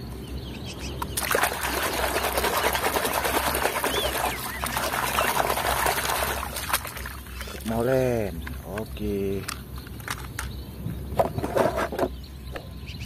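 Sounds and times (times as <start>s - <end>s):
splashing in muddy water: 1.0s - 7.9s.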